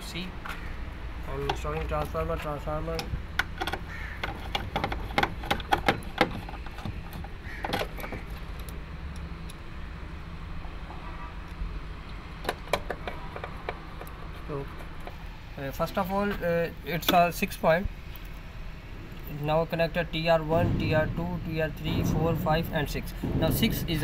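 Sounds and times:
low machinery hum: 0.0s - 24.0s.

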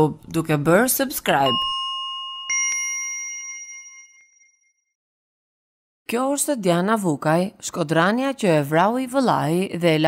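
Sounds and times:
bell chime notification: 1.4s - 4.7s.

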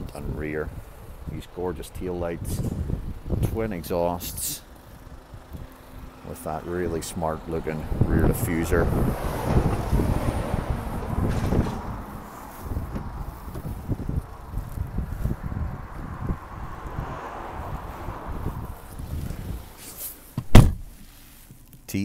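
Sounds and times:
wind buffeting microphone: 2.3s - 3.8s, 7.3s - 19.8s.

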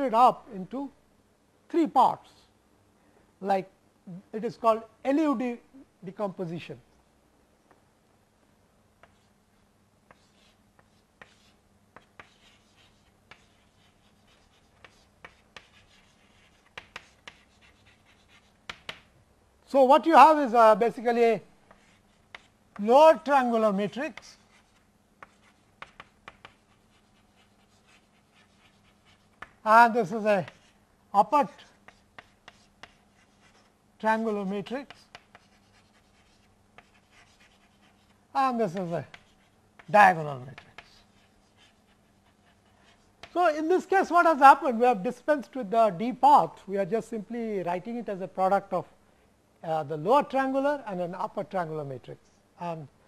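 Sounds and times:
chalk scratching on blackboard: 9.0s - 9.3s, 10.1s - 19.1s, 21.7s - 22.9s, 24.1s - 29.6s, 30.3s - 30.8s, 31.6s - 40.0s, 40.6s - 43.4s
chalk tapping on blackboard: 9.0s - 9.3s, 10.0s - 19.1s, 21.7s - 22.9s, 24.1s - 29.6s, 30.4s - 30.8s, 31.7s - 33.7s, 34.8s - 43.4s.

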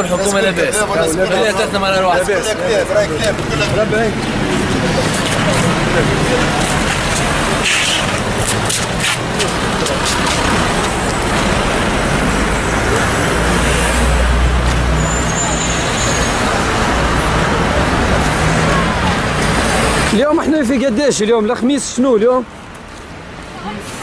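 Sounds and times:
car engines: 0.0s - 24.0s
road noise hiss: 0.0s - 24.0s.

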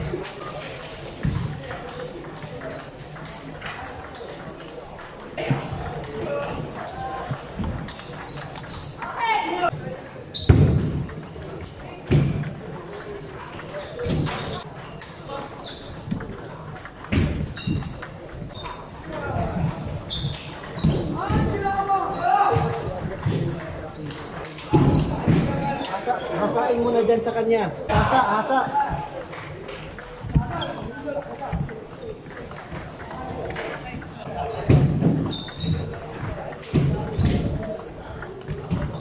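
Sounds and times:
people talking in a large hall: 0.0s - 39.0s.

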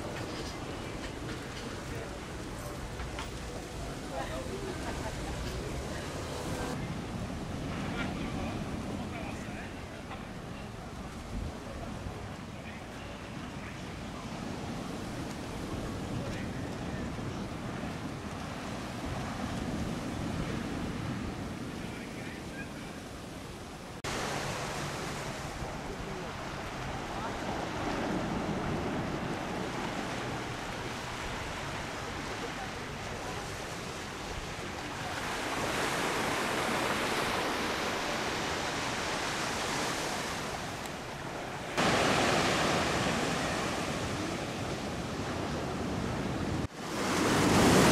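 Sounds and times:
faint voices: 0.0s - 24.0s, 24.6s - 47.8s
small waves washing on shore: 0.0s - 47.9s
wind rumbling on microphone: 0.0s - 47.9s.

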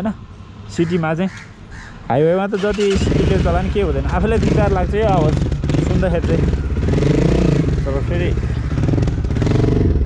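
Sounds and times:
motorcycle engine running: 2.9s - 10.0s.

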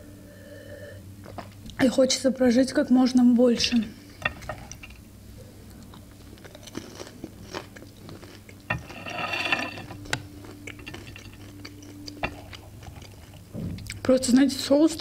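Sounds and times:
chewing with crunches: 4.2s - 14.4s.

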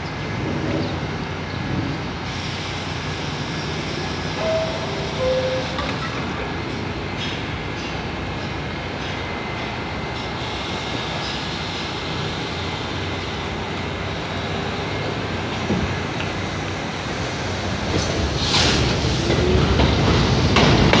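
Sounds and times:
subway train rumble and hum: 0.0s - 21.0s.

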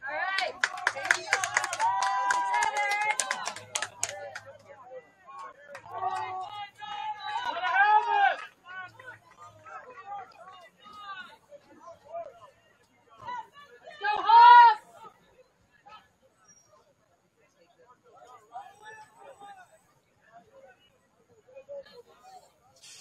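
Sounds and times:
players shouting: 0.0s - 4.6s, 5.5s - 12.0s, 13.2s - 15.1s.

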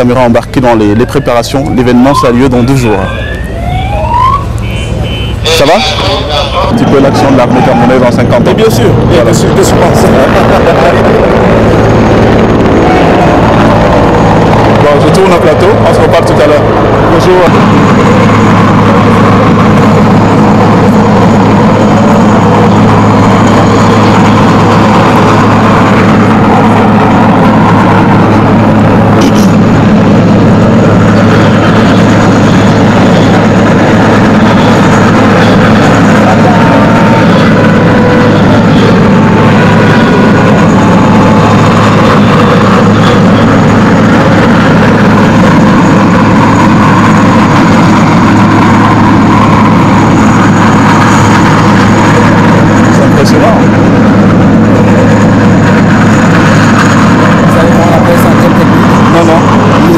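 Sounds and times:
helicopter hovering: 0.0s - 59.9s.

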